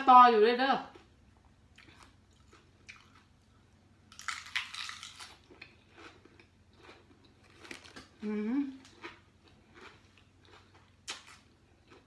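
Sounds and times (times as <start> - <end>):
person chewing lettuce: 0.9 - 12.0.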